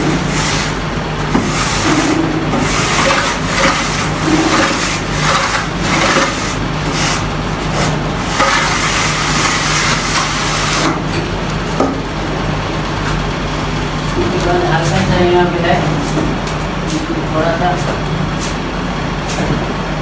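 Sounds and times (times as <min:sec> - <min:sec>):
wooden straightedge scraping plaster: 0:01.4 - 0:07.2, 0:07.8 - 0:10.9.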